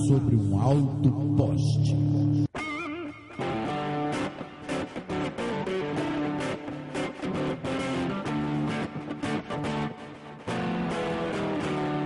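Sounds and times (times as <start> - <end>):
electric guitar blues-rock riff: 1.2 - 12.0.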